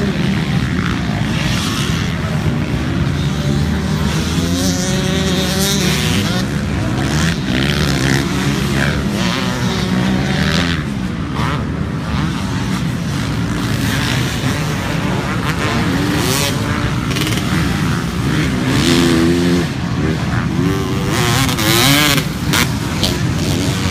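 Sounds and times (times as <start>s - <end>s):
dirt bike engines revving: 0.0s - 23.9s.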